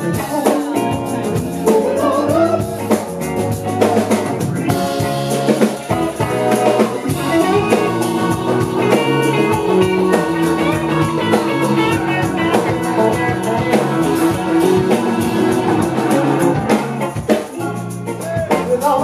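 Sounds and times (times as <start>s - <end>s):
live band playing soul music: 0.0s - 19.0s.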